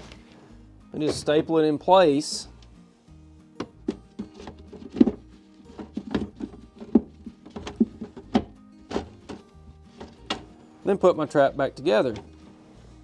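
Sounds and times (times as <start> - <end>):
background music: 0.0 - 13.0
wooden frames knocking: 3.6 - 10.6.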